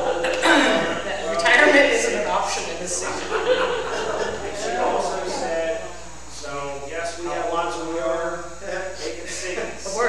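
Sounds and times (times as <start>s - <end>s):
man talking: 4.0s - 10.0s.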